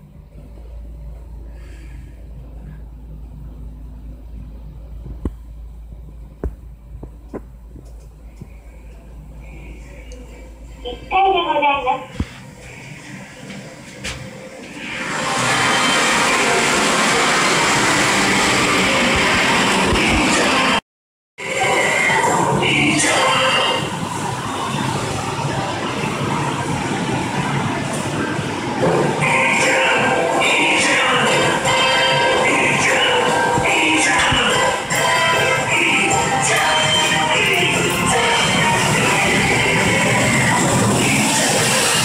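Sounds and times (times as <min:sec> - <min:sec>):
arcade music: 0:30.5 - 0:41.4.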